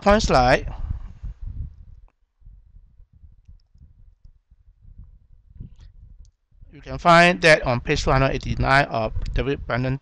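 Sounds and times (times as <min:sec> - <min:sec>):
low rumble of microphone noise: 0:00.0 - 0:10.0.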